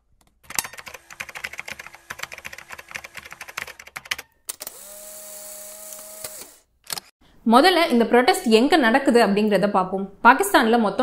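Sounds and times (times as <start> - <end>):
computer keyboard typing: 0.5 - 4.3.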